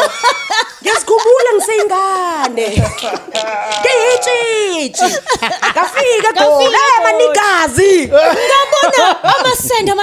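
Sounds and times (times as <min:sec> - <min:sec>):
people laughing: 0:00.0 - 0:10.0
people speaking: 0:00.8 - 0:10.0.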